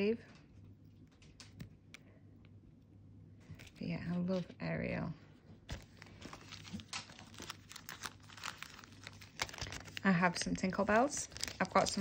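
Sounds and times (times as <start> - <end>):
plastic sleeves crinkling: 3.4 - 12.0.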